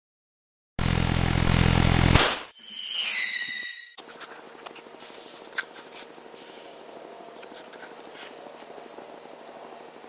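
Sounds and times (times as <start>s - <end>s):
deep hum: 0.8s - 2.2s
burst of noise: 0.8s - 2.5s.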